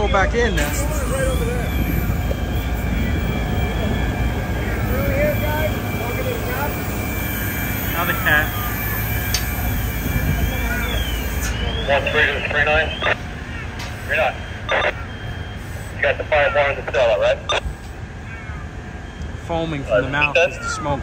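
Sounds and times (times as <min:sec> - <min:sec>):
radio chatter: 0:00.0 - 0:18.8, 0:19.4 - 0:21.0
fire engines rumbling: 0:00.0 - 0:21.0
voices: 0:00.0 - 0:21.0.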